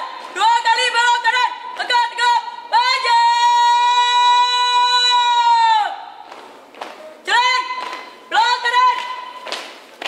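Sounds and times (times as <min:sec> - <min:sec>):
woman shouting drawn-out command: 0:00.0 - 0:06.0, 0:07.2 - 0:09.4.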